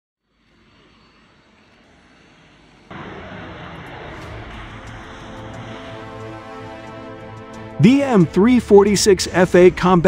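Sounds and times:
jet engine noise: 0:00.5 - 0:08.3.

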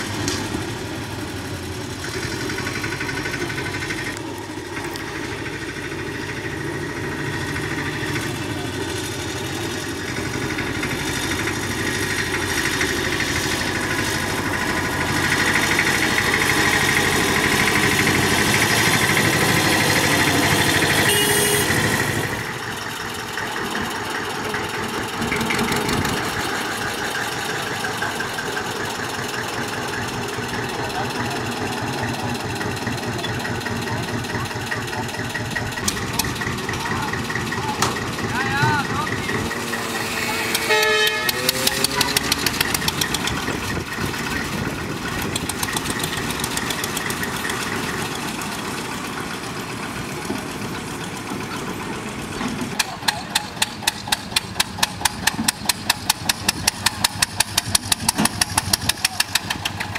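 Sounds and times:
diesel locomotive engine idling: 0:00.0 - 0:59.9
diesel locomotive engine running: 0:00.0 - 0:59.9.

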